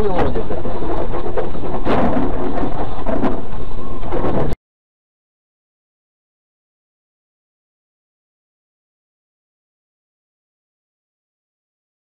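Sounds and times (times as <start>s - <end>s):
knocks and rattles: 0.0s - 4.6s.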